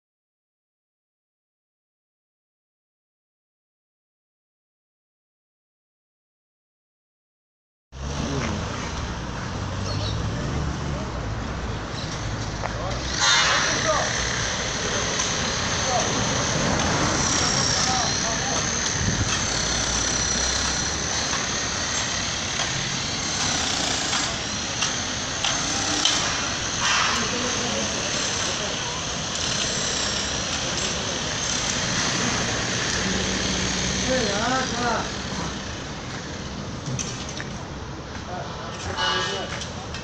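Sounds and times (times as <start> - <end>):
road traffic: 7.9 - 40.0
indistinct voices: 12.7 - 22.0.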